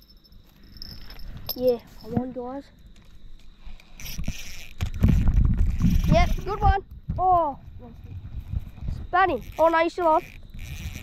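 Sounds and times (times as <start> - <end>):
fishing rod rustling: 0.1 - 2.2, 2.8 - 6.6, 7.6 - 11.0.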